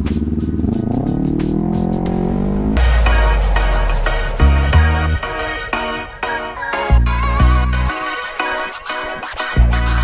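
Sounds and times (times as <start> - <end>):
motorcycle engine accelerating: 0.0 - 7.2
background music: 0.0 - 10.0.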